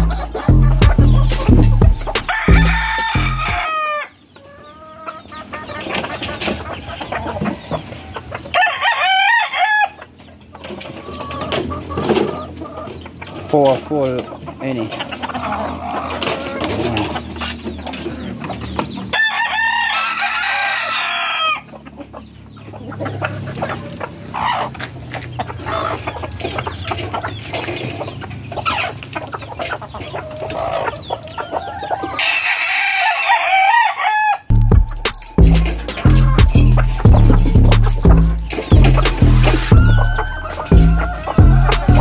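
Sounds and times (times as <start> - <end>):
music: 0.0 - 3.6, 34.5 - 42.0
rooster crowing: 0.0 - 4.2, 6.8 - 10.0, 19.1 - 21.7, 31.4 - 42.0
hens clucking: 0.0 - 42.0.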